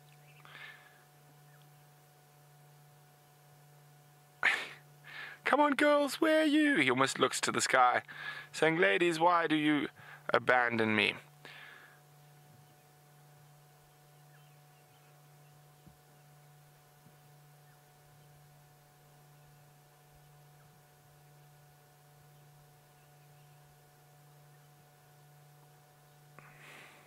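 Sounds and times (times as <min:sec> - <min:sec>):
faint electrical hum: 0:00.0 - 0:27.0.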